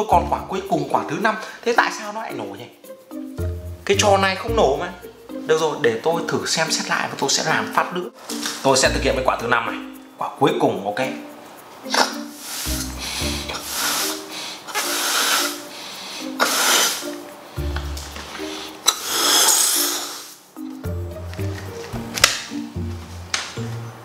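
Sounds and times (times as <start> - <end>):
music with a low melody: 0.0 - 19.7, 20.5 - 24.0
breathy puffs blowing up a balloon: 11.9 - 17.2, 18.4 - 20.4.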